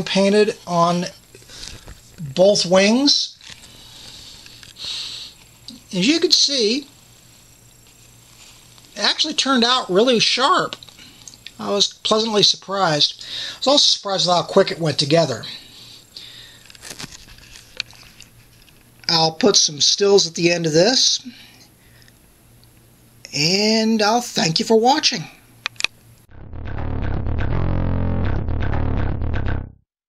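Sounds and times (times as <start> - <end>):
low hiss: 0.0 - 26.2
man breathing in: 3.6 - 5.4, 13.2 - 13.6, 15.6 - 16.8.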